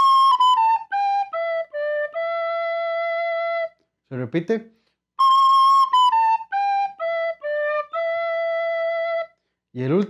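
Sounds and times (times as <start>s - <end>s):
recorder playing a melody: 0.0s - 3.7s, 5.2s - 9.3s.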